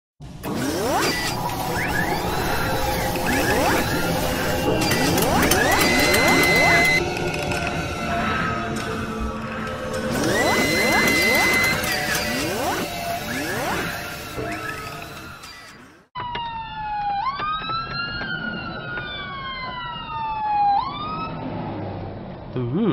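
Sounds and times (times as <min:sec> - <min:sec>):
mechanical whirring and clattering: 0:00.2 - 0:16.2
fire engine siren wailing: 0:00.5 - 0:21.6.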